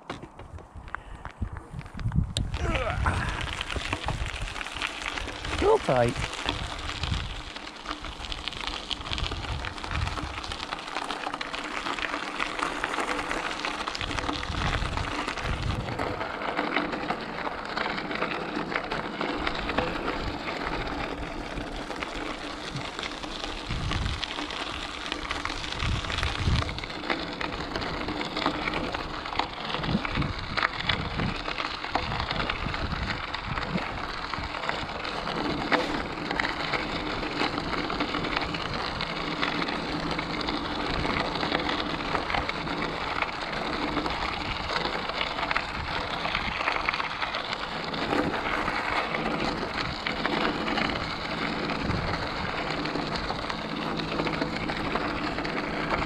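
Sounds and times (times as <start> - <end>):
bike clicks and rattles: 0.0 - 56.0
bike tyres crunching gravel: 0.0 - 56.0.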